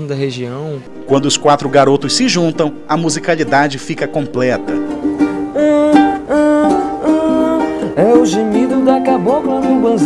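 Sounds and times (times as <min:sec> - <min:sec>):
ukuleles playing a melody: 0:00.9 - 0:10.0.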